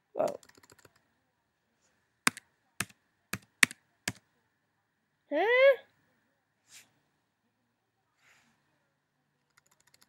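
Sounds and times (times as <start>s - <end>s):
computer keyboard keystrokes: 0.2s - 1.0s, 2.3s - 4.2s, 9.5s - 10.0s.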